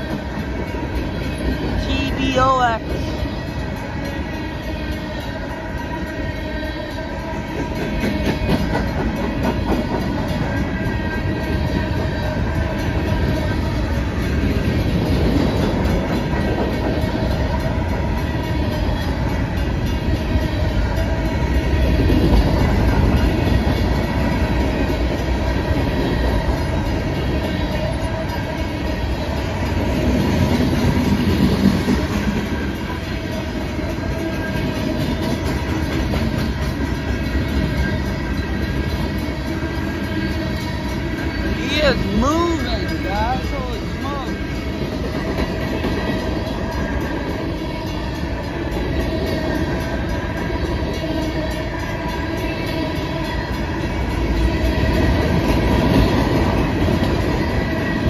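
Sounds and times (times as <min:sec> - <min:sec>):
clickety-clack of rail joints: 0:00.0 - 0:01.8, 0:02.7 - 0:41.6, 0:43.8 - 0:58.0
freight train wheels rumbling: 0:00.0 - 0:58.0.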